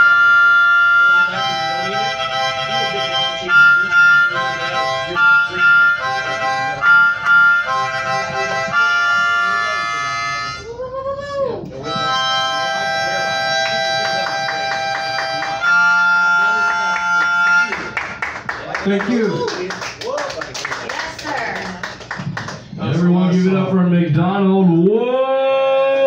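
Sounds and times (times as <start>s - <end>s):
harmonica playing: 0.0s - 10.8s, 11.8s - 18.3s
man talking: 18.6s - 20.7s, 22.8s - 25.5s.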